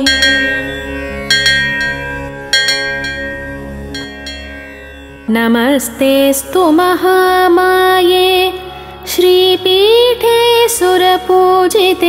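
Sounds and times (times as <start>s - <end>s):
bell-like struck notes: 0.0s - 6.3s
steady low drone: 0.0s - 6.8s.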